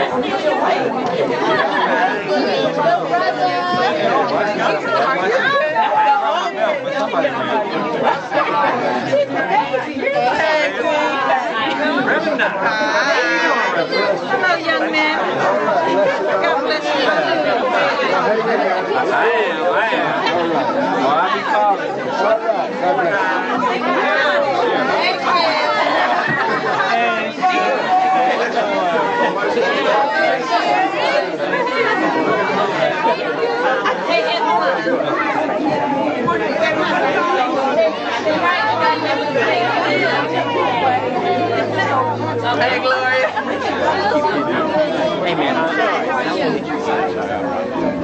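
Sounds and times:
overlapping chatter of voices: 0.0 - 48.0.

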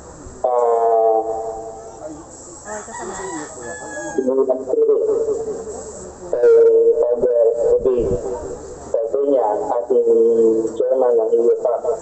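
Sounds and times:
faint talk: 0.0 - 12.0
rooster crowing: 2.6 - 4.4.

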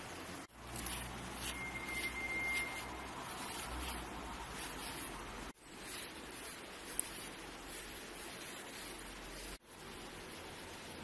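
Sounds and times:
faint outdoor hiss: 0.0 - 11.0
brush swishing through fur: 0.6 - 9.7
high-pitched tone: 1.4 - 3.2.

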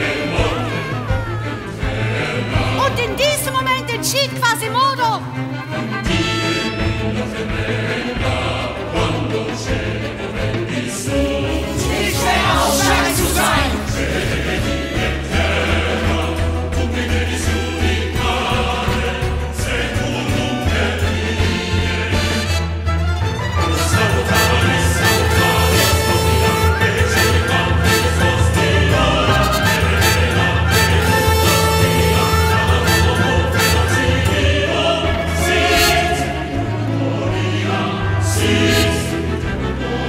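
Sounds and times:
choir singing: 0.0 - 3.8, 5.5 - 40.0
orchestra playing dramatic music: 0.0 - 40.0.

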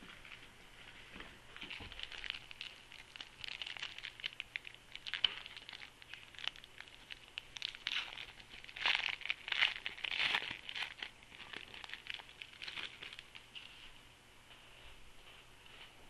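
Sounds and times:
foil wrapper tearing and crinkling: 1.6 - 13.5.

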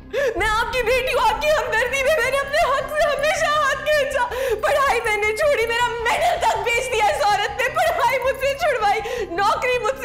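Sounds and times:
soft steady music: 0.0 - 10.0
woman's wavering wordless voice: 0.1 - 10.0.

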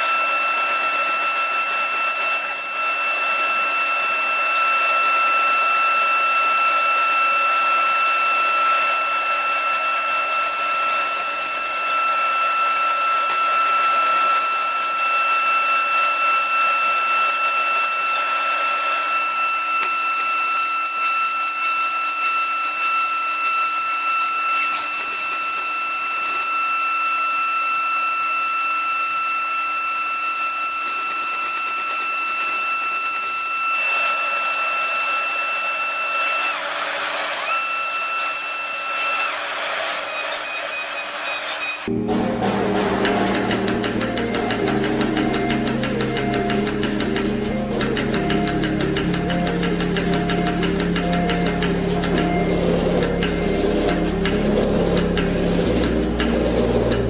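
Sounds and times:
milling machine high-pitched whine: 0.0 - 57.0.

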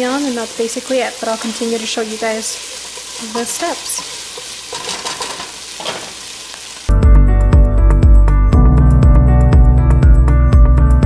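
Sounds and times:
sausage sizzling in a pot: 0.0 - 6.9
loud music: 6.9 - 11.0.

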